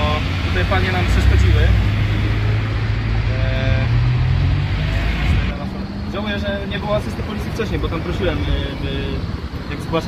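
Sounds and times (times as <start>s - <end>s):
vehicle engine speeding up: 0.4s - 6.3s.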